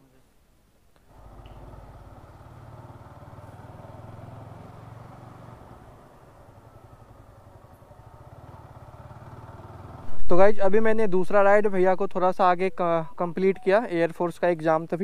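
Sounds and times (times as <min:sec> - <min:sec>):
motorcycle engine running at low speed: 0:01.0 - 0:10.3.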